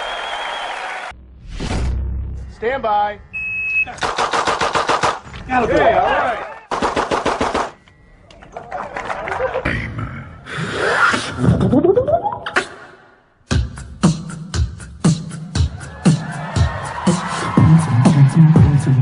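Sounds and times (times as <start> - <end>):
revolver firing rapid shots: 4.0 - 5.2, 6.7 - 7.8.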